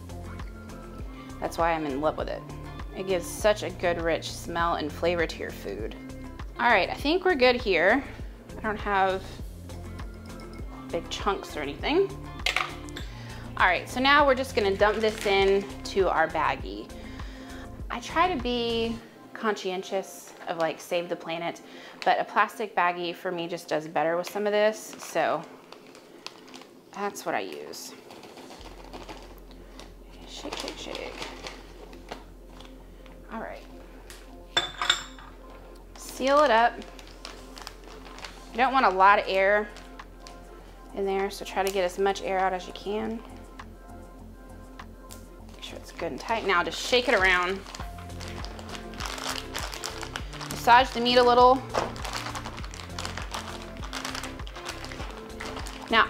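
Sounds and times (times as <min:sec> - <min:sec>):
music with steady beat: 0:00.0 - 0:03.0, 0:09.4 - 0:13.3, 0:43.2 - 0:45.5, 0:47.2 - 0:56.0
plastic bag crinkling: 0:14.6 - 0:15.7, 0:24.8 - 0:32.8, 0:35.4 - 0:40.4, 0:45.5 - 0:56.0
plastic bowl and bag clicking: 0:51.6 - 0:55.9.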